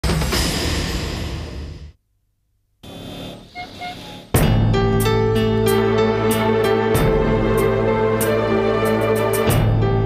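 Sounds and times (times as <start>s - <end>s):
street traffic noise: 2.8s - 4.4s.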